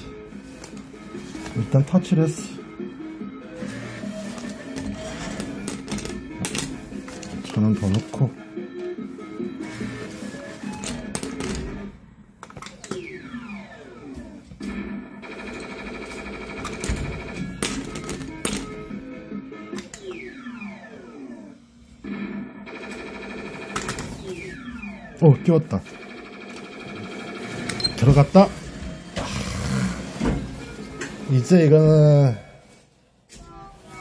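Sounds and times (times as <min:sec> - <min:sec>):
electronic game music: 0:12.8 - 0:28.6.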